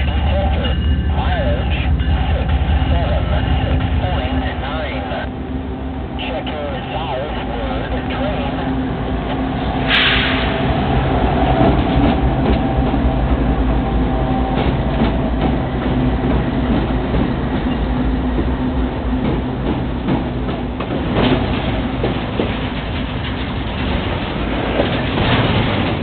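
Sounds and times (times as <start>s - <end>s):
diesel locomotive engines: 0.0s - 26.0s
train wheels clacking on rails: 9.3s - 26.0s.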